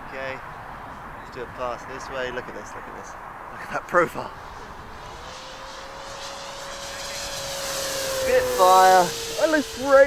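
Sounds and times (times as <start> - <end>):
electric model plane propeller whine: 4.3 - 10.0.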